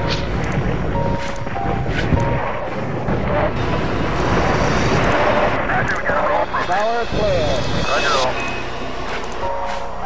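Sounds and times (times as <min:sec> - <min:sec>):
dense wash of noise music: 0:00.0 - 0:10.0.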